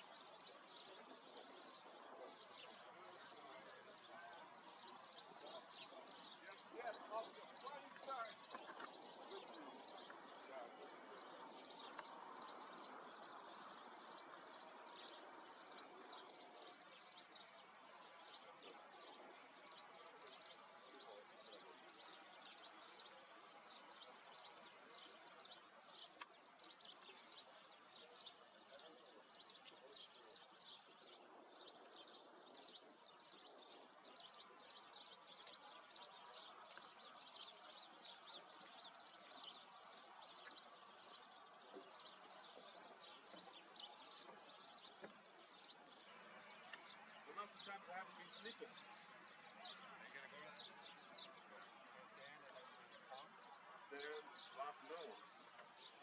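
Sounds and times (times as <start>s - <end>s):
low background murmur: 0.0s - 56.0s
small birds chirping: 0.0s - 56.0s.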